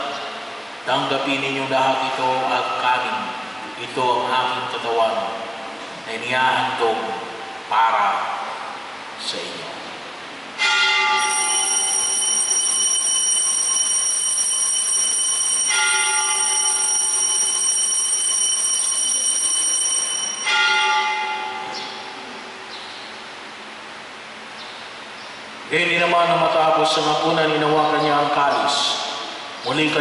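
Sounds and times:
altar bell ringing: 0:10.6 - 0:22.2.

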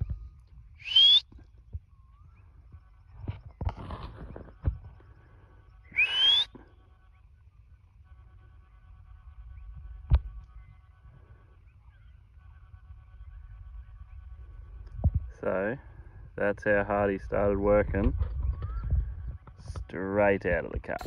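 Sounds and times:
loud rising whistle: 0:00.8 - 0:01.3, 0:05.9 - 0:06.5.

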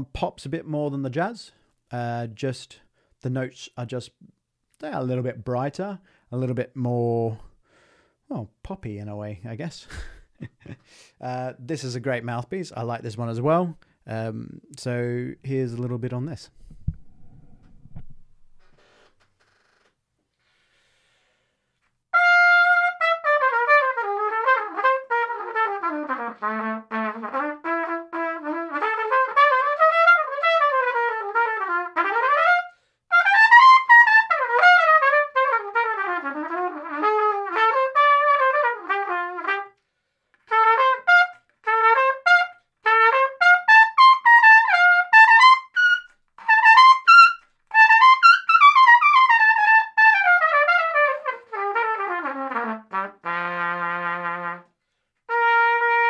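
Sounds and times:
player breathing: 0:07.5 - 0:08.3, 0:10.8 - 0:11.2, 0:20.3 - 0:21.9, 0:39.8 - 0:40.4
trumpet melody: 0:22.1 - 0:39.8, 0:40.4 - 0:56.0.

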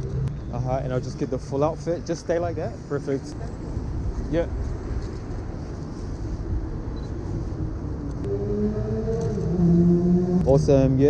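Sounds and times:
rumble of passing vehicles: 0:00.0 - 0:11.0
vehicle engine pulling away: 0:07.8 - 0:11.0.

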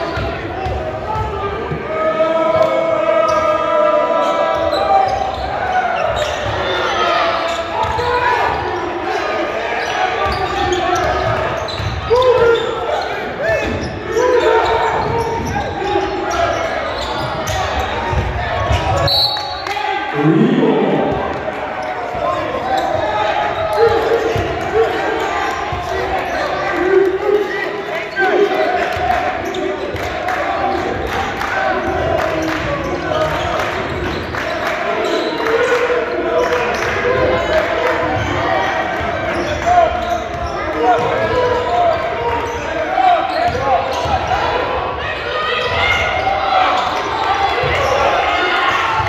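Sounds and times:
people calling out: 0:18.7 - 0:29.8.

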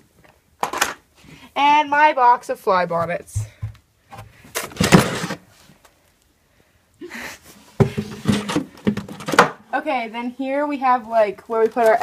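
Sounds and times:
plastic crate scraping on wood: 0:04.1 - 0:05.5, 0:07.8 - 0:09.4.

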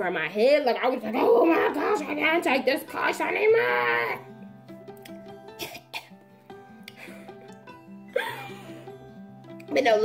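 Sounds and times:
quiet background music: 0:00.0 - 0:10.0
woman's breathy cough: 0:05.6 - 0:06.2.

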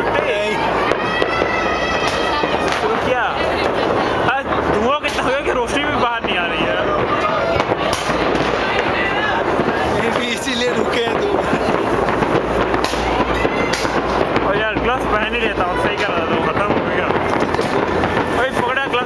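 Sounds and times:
fireworks bangs and crackles: 0:00.0 - 0:19.0
people talking nearby: 0:00.0 - 0:19.0.

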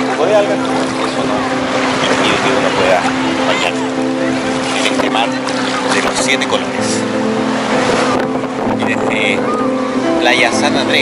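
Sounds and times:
motorboat engine droning: 0:00.0 - 0:11.0
water noise: 0:00.0 - 0:11.0
wind: 0:00.0 - 0:11.0.

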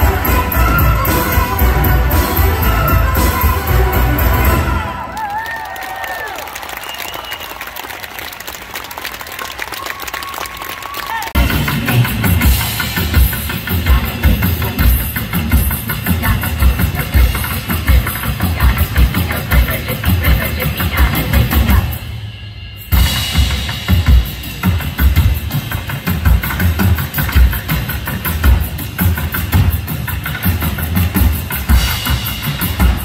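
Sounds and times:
drum kit heavy beat: 0:00.0 - 0:05.0, 0:11.4 - 0:33.0
live band music: 0:00.0 - 0:05.5, 0:11.3 - 0:33.0
crowd noise: 0:00.0 - 0:33.0
scattered applause: 0:04.5 - 0:11.6.

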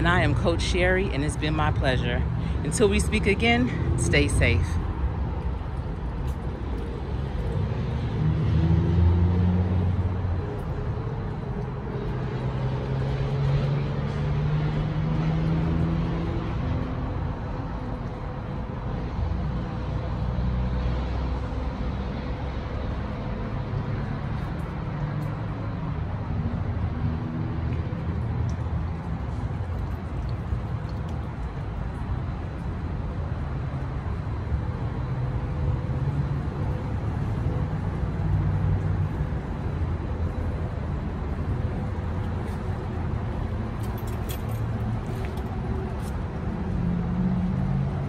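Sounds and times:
passing vehicles rumble: 0:00.0 - 0:48.0.

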